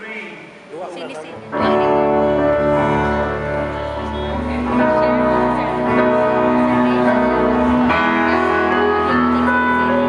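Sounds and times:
electric guitar chord: 0:01.4 - 0:10.0
low bass notes: 0:01.4 - 0:10.0.

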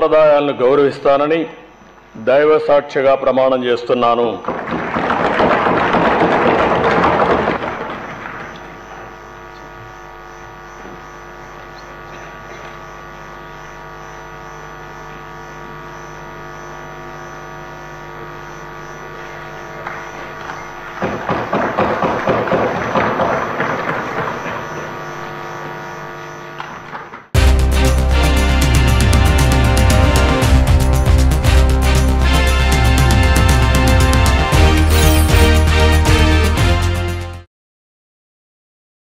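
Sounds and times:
applause: 0:04.4 - 0:09.3, 0:19.8 - 0:25.2
steady electrical hum: 0:06.7 - 0:35.1.

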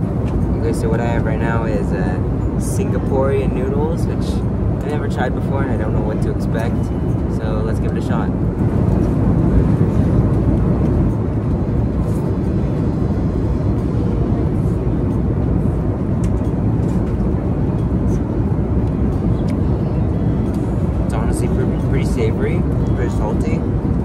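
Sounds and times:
airliner cabin rumble: 0:00.0 - 0:24.0.

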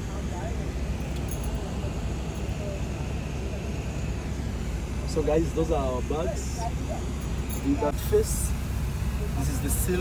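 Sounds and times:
bus engine and road rumble: 0:00.0 - 0:10.0.

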